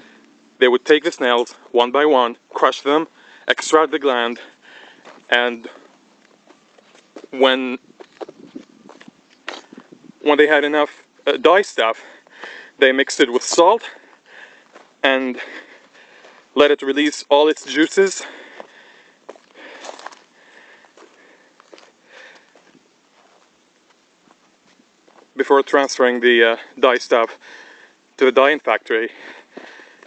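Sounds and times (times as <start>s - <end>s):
faint breathing: 0.0s - 0.5s, 3.1s - 3.5s, 4.4s - 7.3s, 12.0s - 12.8s, 13.8s - 16.6s, 18.2s - 23.7s, 26.6s - 28.2s, 29.1s - 30.0s
footsteps on stony ground: 4.3s - 10.2s, 11.9s - 12.7s, 13.4s - 16.6s, 18.1s - 25.4s, 29.2s - 30.0s.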